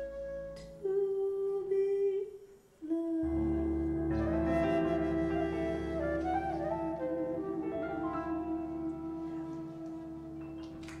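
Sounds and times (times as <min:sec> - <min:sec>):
woman humming long held notes: 0:00.0 - 0:11.0
bass: 0:03.2 - 0:11.0
soft ballad accompaniment: 0:03.2 - 0:11.0.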